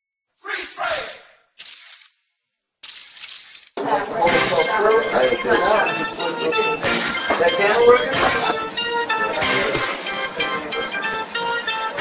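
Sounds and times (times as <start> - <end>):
camera shutter firing: 1.6 - 2.2, 2.8 - 3.8.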